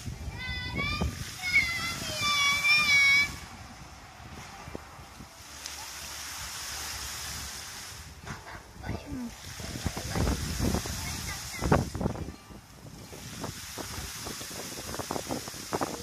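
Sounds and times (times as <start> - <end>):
water gushing and splashing: 0.0 - 16.0
water jets spraying: 0.0 - 16.0.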